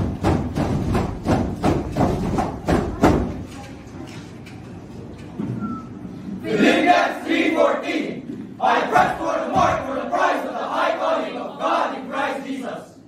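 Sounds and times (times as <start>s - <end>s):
group reciting in unison: 6.3s - 13.0s.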